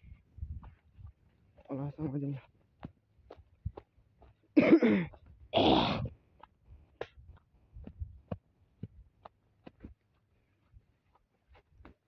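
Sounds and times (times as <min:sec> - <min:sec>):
footsteps on grass: 0:00.0 - 0:04.6, 0:06.8 - 0:12.0.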